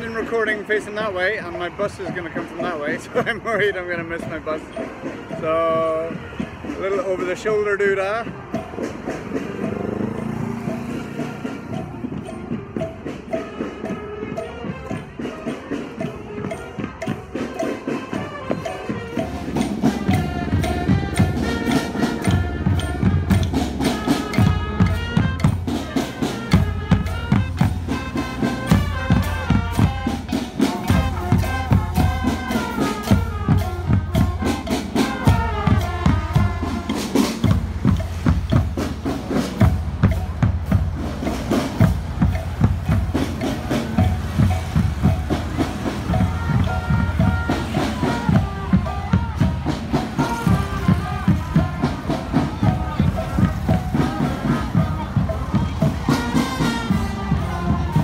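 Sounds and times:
drums beating march rhythm: 0.0s - 58.0s
marching band tune: 0.0s - 58.0s.

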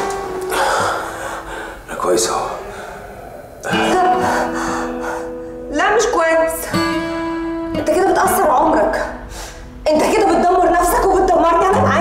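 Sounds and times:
soft film score with guitar: 0.0s - 12.0s
breathy gasps and heavy breathing: 2.6s - 5.7s.

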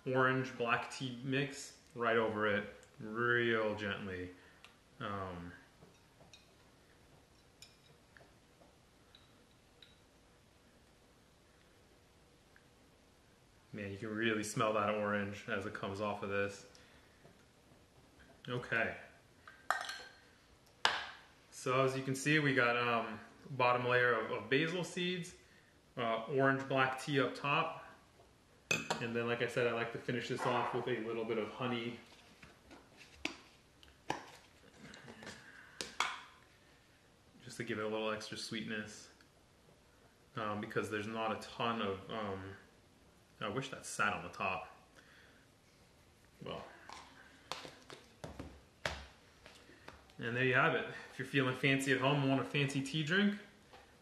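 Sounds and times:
kitchenware clinking on a countertop: 19.7s - 20.3s.

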